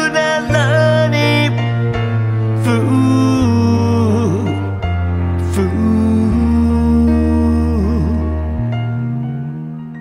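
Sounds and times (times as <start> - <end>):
bass and chords: 0.0 - 10.0
man singing a long note: 2.6 - 4.8, 5.4 - 9.8.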